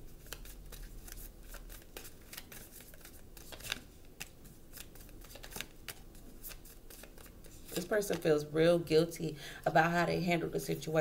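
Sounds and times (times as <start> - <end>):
cards being shuffled: 0.2 - 8.3.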